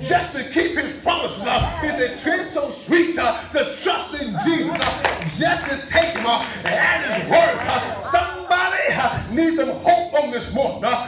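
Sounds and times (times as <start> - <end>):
people shouting and exclaiming: 4.1 - 9.3
hand clapping: 4.6 - 7.9.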